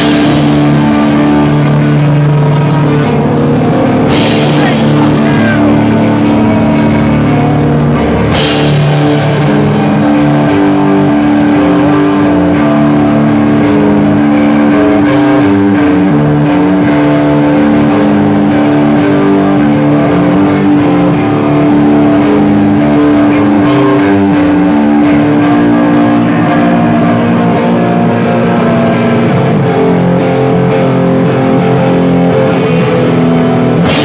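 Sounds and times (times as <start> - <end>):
bass guitar riff: 0.0 - 34.0
distorted electric guitar: 0.0 - 34.0.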